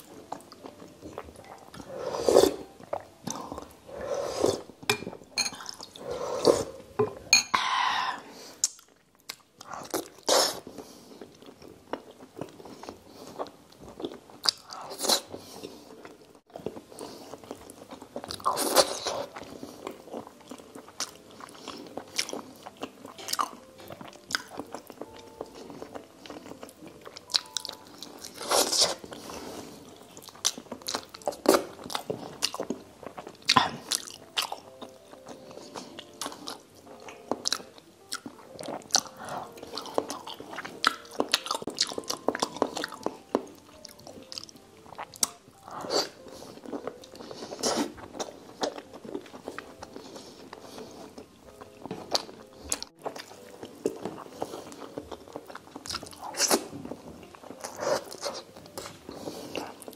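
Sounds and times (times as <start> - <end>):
food being chewed: 0.0 - 7.4, 8.4 - 59.9
wet mouth clicks: 8.6 - 10.0.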